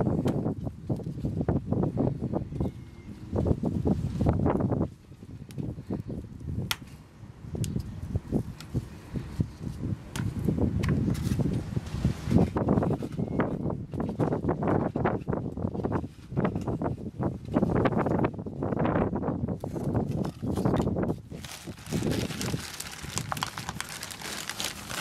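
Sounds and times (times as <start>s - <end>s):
hands rustling potting soil: 19.5s - 25.0s
plastic cups crinkling: 19.7s - 25.0s.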